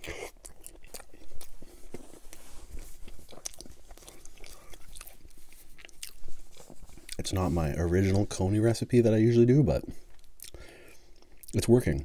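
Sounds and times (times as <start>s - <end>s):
wet chewing mouth clicks: 0.0s - 7.3s, 10.1s - 11.6s.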